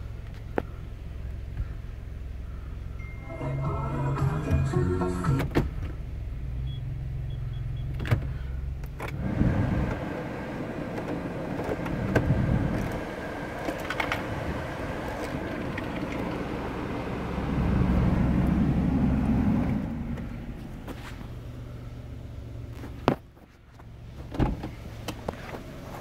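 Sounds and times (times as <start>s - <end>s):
car cabin hum: 0.0s - 26.0s
blower fan rushing: 9.0s - 22.5s.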